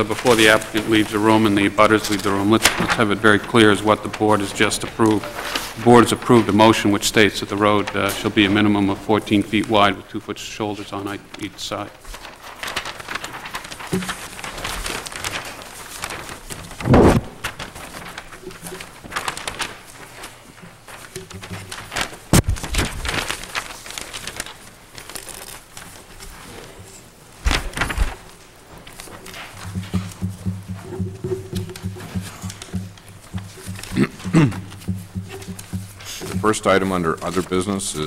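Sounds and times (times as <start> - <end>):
paper sheets rustling: 0.0 - 38.0.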